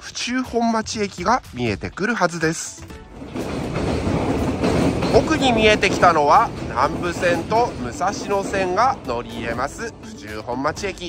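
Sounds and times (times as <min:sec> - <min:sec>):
train wheels rumbling on rails: 0:01.2 - 0:11.0.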